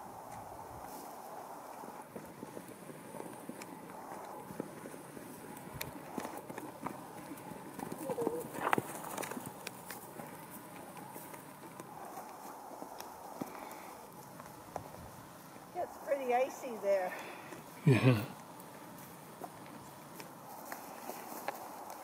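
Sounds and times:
horse hoofbeats on frozen ground: 0:00.0 - 0:16.8, 0:17.4 - 0:22.0.

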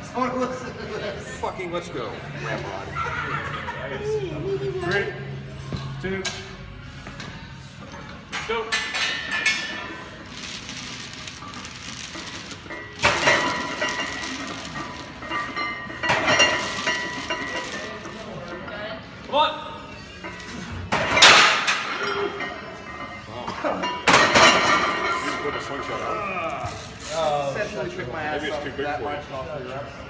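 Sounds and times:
steel chains clinking and rattling: 0:07.8 - 0:19.4, 0:20.2 - 0:22.1.

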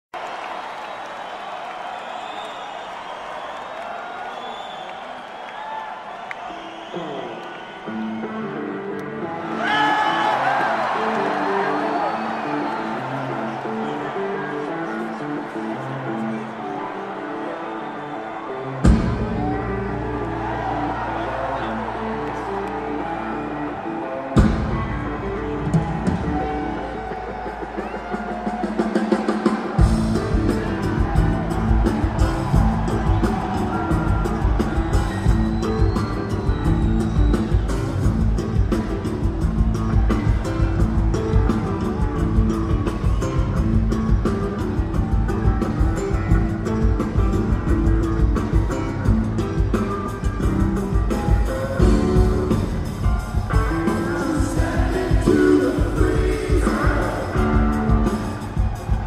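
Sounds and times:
crowd applauding and cheering: 0:00.0 - 0:59.0
faint shouts and whistles: 0:01.7 - 0:08.4
live rock band playing: 0:18.6 - 0:59.0.

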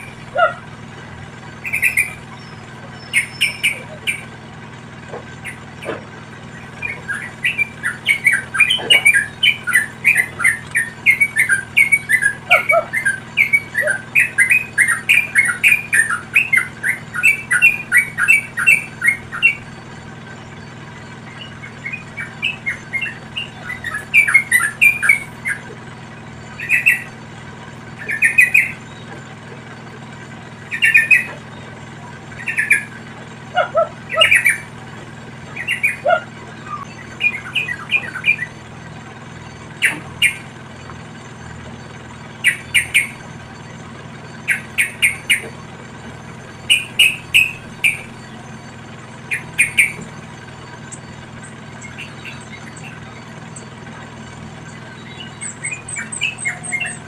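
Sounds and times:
bulbuls calling short notes: 0:00.0 - 0:57.0.

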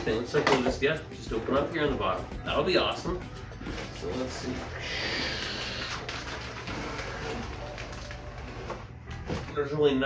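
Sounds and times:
plastic wrap rustling: 0:01.6 - 0:10.0.

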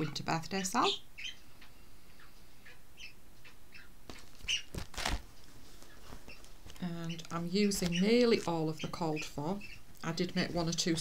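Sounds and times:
faint bird-like chirps: 0:00.7 - 0:04.7
plastic booklet rustle and knock: 0:04.1 - 0:08.6.

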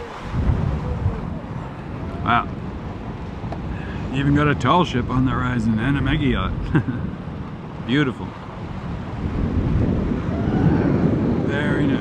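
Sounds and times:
water washing against hull: 0:00.0 - 0:12.0
wind buffeting microphone: 0:00.0 - 0:12.0.

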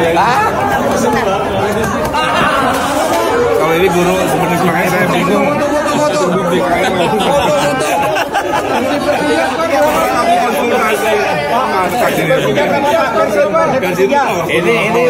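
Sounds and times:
men talking over one another: 0:00.0 - 0:15.0.

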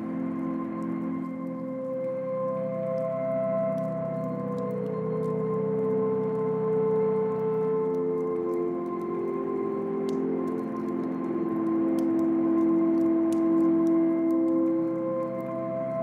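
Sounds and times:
log fire crackling: 0:00.0 - 0:16.0
slow ambient music: 0:00.0 - 0:16.0.

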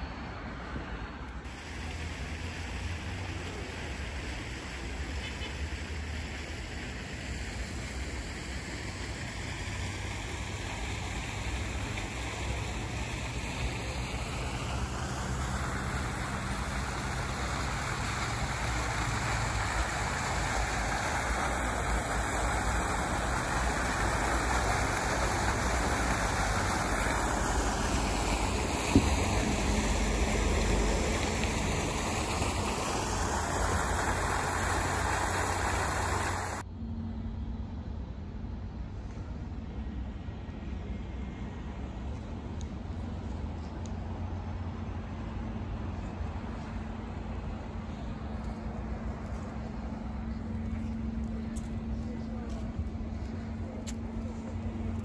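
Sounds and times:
road traffic hum: 0:00.0 - 0:55.0
fountain splashing into basin: 0:01.5 - 0:36.6.

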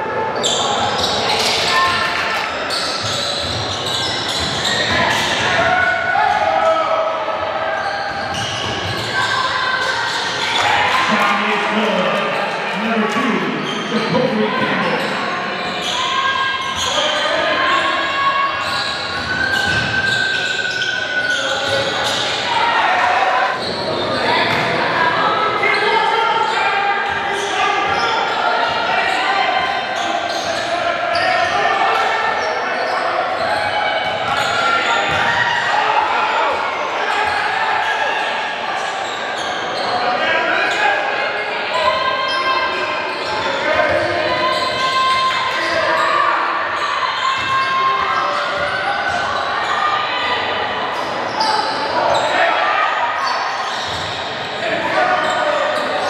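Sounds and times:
echoing crowd voices: 0:00.0 - 0:56.0.

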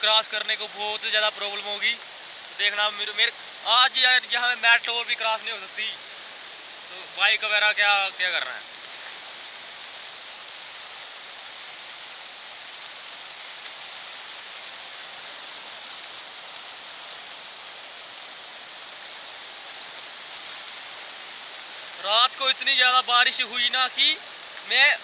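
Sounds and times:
floodwater rushing: 0:00.0 - 0:25.0.

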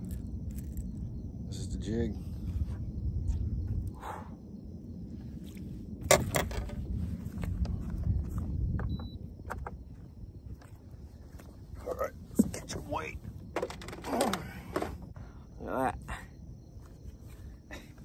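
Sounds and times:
low rumble: 0:00.0 - 0:12.4.

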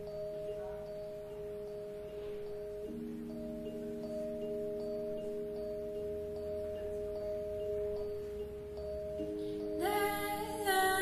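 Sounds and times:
keyboard sustained chord: 0:00.0 - 0:11.0.

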